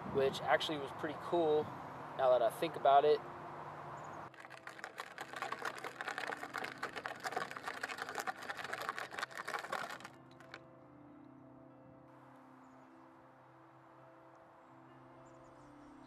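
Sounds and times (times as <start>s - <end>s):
plastic wheels crunching over gravel: 4.3s - 10.6s.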